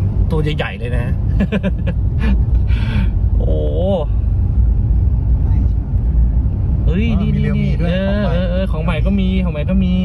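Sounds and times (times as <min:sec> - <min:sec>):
car interior engine and tyre rumble: 0:00.0 - 0:10.0.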